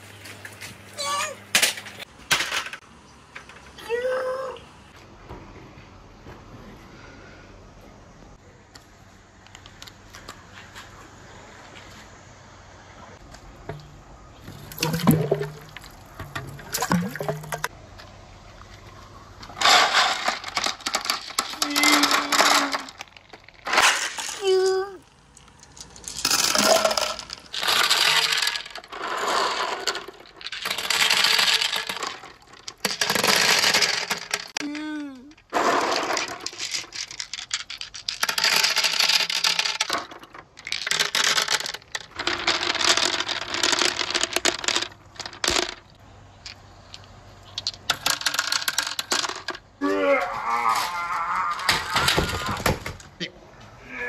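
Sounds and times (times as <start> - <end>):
marbles rolling on wooden run: 13.7 - 17.7, 19.5 - 49.8.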